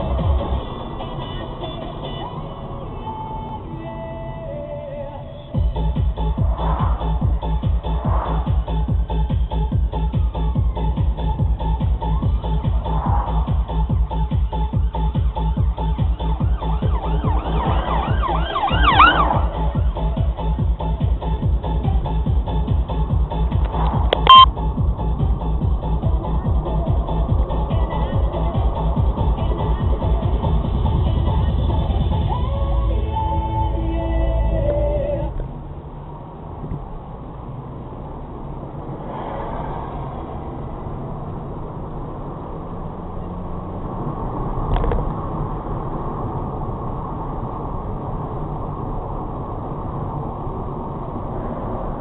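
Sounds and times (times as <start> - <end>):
car engine and tyres rumbling: 0.0 - 52.0
electronic dance music: 5.6 - 20.5
police siren yelping: 16.2 - 19.7.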